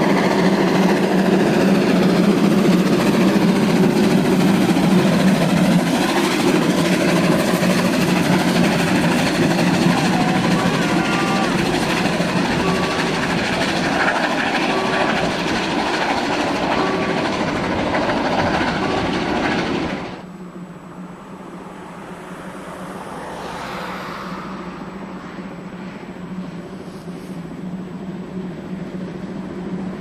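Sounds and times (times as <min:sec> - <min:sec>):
train wheels running over rails: 0:00.0 - 0:20.4.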